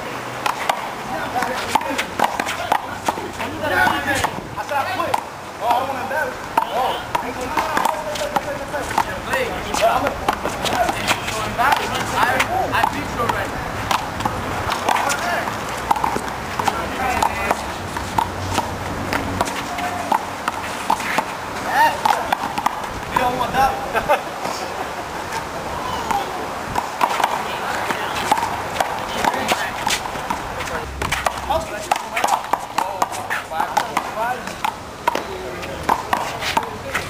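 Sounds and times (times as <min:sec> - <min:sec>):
people talking and calling out: 0:00.0 - 0:37.0.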